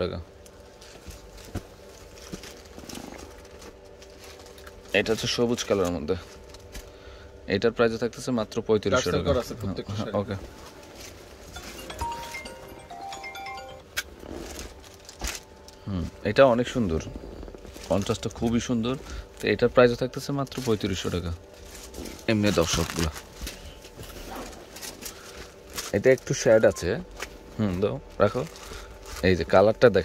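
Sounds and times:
low steady hum: 0:00.0 - 0:30.0
man speaking: 0:08.0 - 0:10.4.

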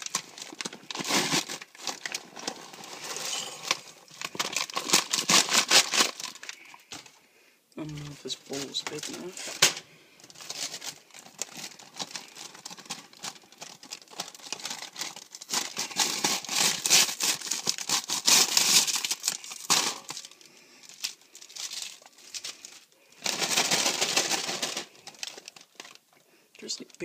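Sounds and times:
paper bag crinkling: 0:00.0 - 0:07.2, 0:07.8 - 0:27.0
popcorn shaken into bowl: 0:08.2 - 0:09.4, 0:23.3 - 0:25.6.

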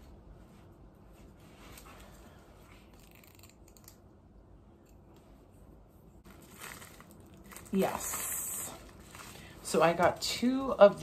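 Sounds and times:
plastic package rustling: 0:06.2 - 0:10.7.

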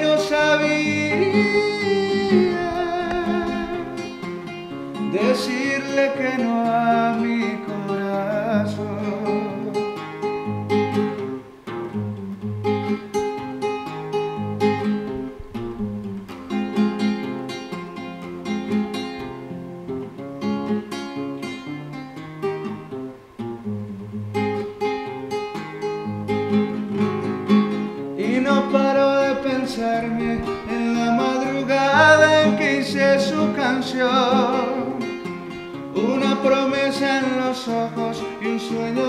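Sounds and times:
man singing long note: 0:00.0 - 0:04.0
classical guitar fingerstyle: 0:00.0 - 0:39.0.

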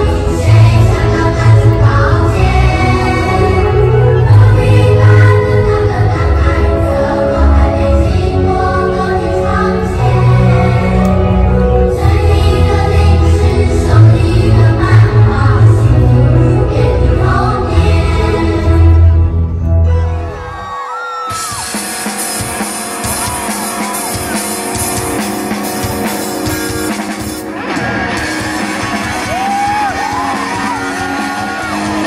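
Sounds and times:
choir singing held notes: 0:00.0 - 0:19.2
instrumental accompaniment with bass: 0:00.0 - 0:32.0
live rock band playing: 0:21.3 - 0:32.0
high bent guitar melody: 0:21.5 - 0:32.0.

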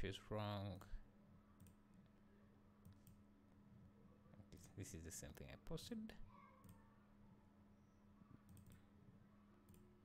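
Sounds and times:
low steady hum: 0:00.0 - 0:10.0
computer mouse clicks: 0:01.6 - 0:01.8, 0:02.8 - 0:03.2, 0:08.4 - 0:08.9, 0:09.6 - 0:09.9.

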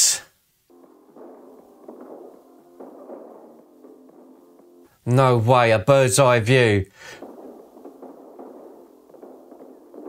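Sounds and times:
gunshots: 0:00.7 - 0:04.9, 0:07.0 - 0:10.0
muffled film music: 0:00.7 - 0:05.2, 0:07.2 - 0:10.0.

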